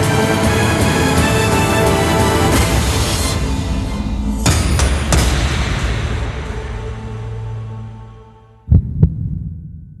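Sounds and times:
heartbeat thumps: 8.7 - 10.0.

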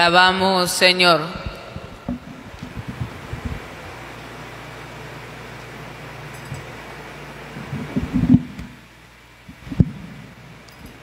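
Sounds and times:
hand bumping microphone: 1.8 - 3.7.

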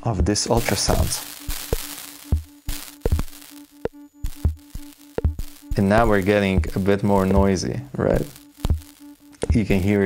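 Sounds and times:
low bass-drum thumps: 0.0 - 7.6, 8.2 - 9.9
fast pulsing synth tone: 0.0 - 10.0
synth noise hiss: 0.0 - 10.0
sharp clicks: 8.2 - 9.9.

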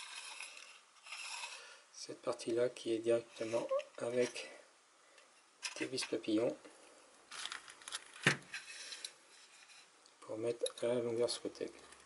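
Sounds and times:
metal slide scraping on rail: 0.0 - 1.8.

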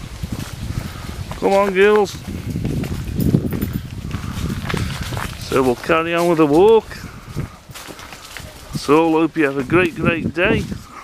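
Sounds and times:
low microphone rumble: 0.0 - 10.9
footsteps on leaves: 0.0 - 11.0.

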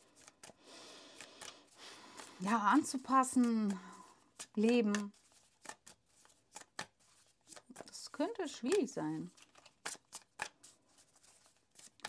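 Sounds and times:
cards snapping while shuffled: 0.0 - 12.0.

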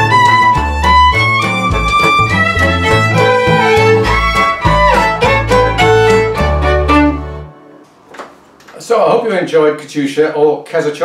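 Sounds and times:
held violin note: 0.0 - 7.8
low backing chord: 0.1 - 7.8
man speaking: 8.7 - 11.0.

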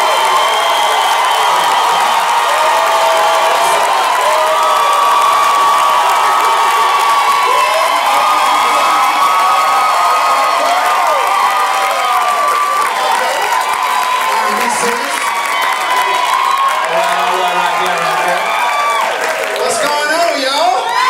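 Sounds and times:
audience cheering and whooping: 0.0 - 21.0.

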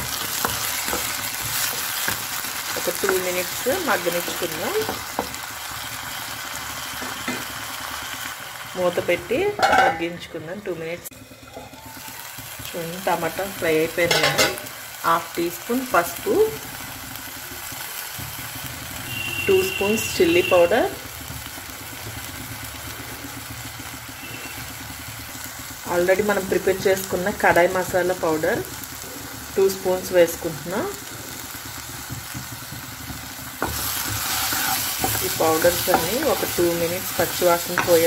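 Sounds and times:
food sizzling in a pan: 0.0 - 38.0
spatula scraping: 33.6 - 36.6.

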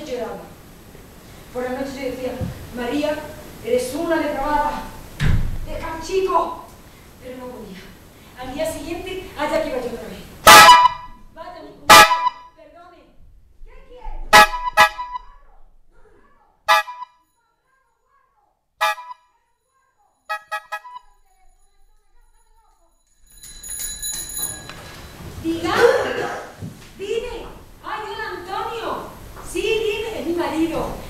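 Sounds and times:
horn honking: 10.4 - 11.2, 11.9 - 12.5, 14.3 - 15.3, 16.7 - 17.2, 18.8 - 19.3, 20.3 - 21.2
telephone bell ringing: 23.2 - 25.2.

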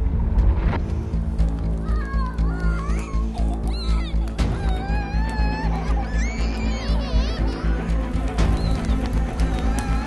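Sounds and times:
dramatic film score with pulsing beat: 0.0 - 10.0
children's wavering cries: 1.8 - 10.0.

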